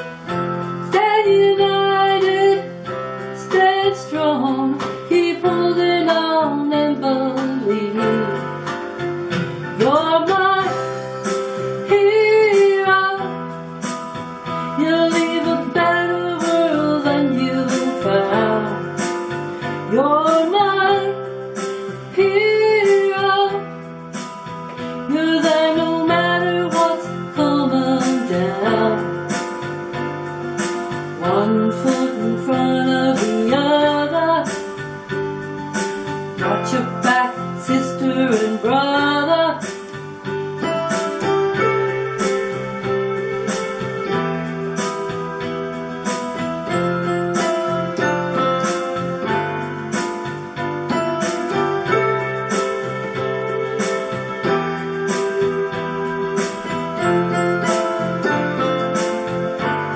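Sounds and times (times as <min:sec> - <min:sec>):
guitar accompaniment: 0:00.0 - 0:59.9
woman singing: 0:00.8 - 0:08.7, 0:09.7 - 0:11.1, 0:11.8 - 0:13.4, 0:14.8 - 0:19.2, 0:19.8 - 0:21.3, 0:22.1 - 0:23.7, 0:25.0 - 0:29.4, 0:31.2 - 0:34.8, 0:36.4 - 0:39.9.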